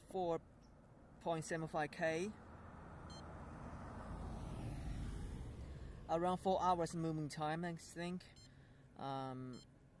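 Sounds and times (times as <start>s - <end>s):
vehicle passing on road: 0.4s - 7.3s.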